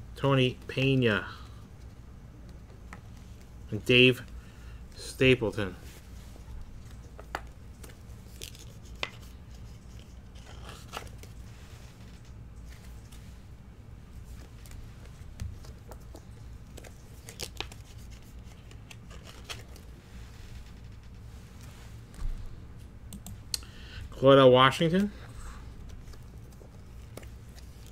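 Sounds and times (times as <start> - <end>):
steady low hum: 0.0 - 27.9.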